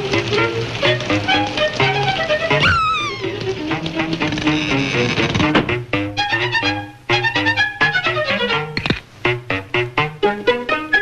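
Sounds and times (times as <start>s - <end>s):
cartoon fiddle music with bass: 0.0s - 11.0s.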